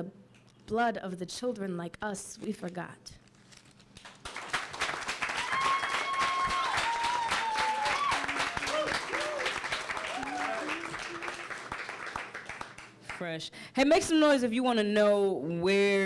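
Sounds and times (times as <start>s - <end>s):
audience applause: 4.1s - 13.1s
whoops and cheers: 5.2s - 11.4s
low shouts: 5.4s - 11.4s.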